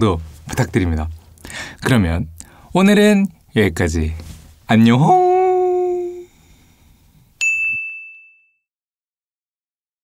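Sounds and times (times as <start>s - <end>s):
bright bell-like ding: 7.4s - 8.7s.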